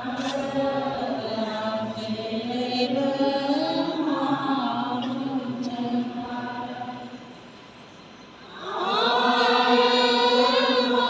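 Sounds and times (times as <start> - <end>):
congregation singing a hymn: 0.0 - 7.3, 8.4 - 11.0.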